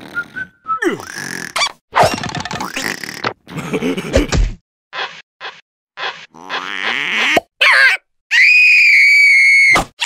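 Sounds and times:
high-pitched scream: 8.3 - 9.8.

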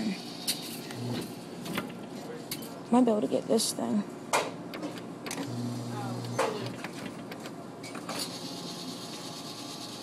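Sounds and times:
store background noise: 0.0 - 10.0
claw machine motor humming: 5.2 - 7.4.

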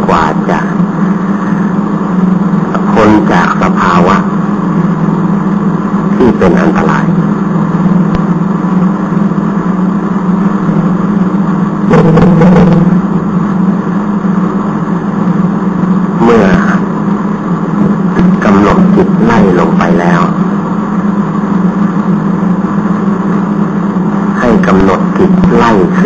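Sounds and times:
loud low hum: 0.0 - 26.0.

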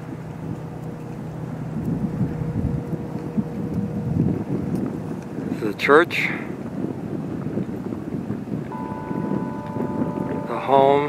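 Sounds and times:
wind rumbling on microphone: 0.0 - 11.0
faint high tone: 8.8 - 11.0.

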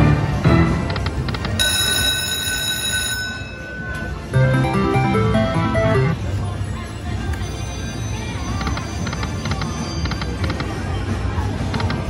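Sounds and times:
electronic bell ringing: 1.6 - 6.2.

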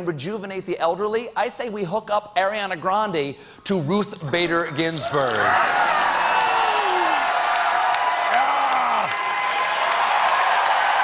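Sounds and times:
audience applauding: 5.4 - 11.0.

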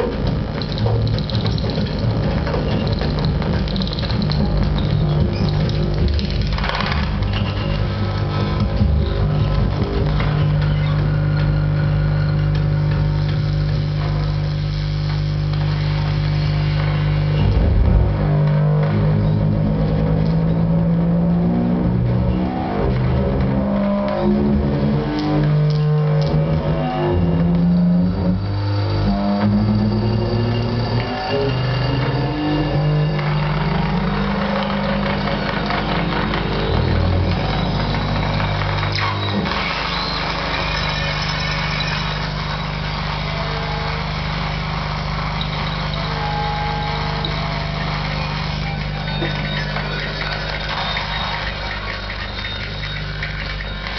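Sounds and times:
dense electronic noise: 0.0 - 53.9
low electronic drone: 0.0 - 53.9.

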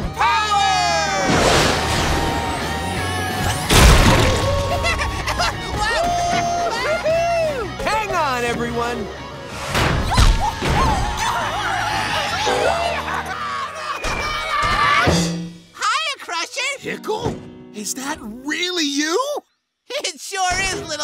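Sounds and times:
wordless shouts and whoops: 0.0 - 7.8, 10.0 - 15.2
cartoon action music: 0.2 - 7.3, 9.5 - 15.3
loud crash: 1.1 - 5.4, 9.5 - 11.3.

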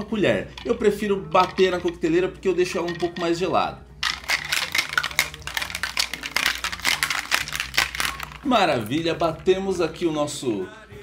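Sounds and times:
ice rattling in metal cocktail shaker: 0.0 - 3.4, 4.0 - 9.9.

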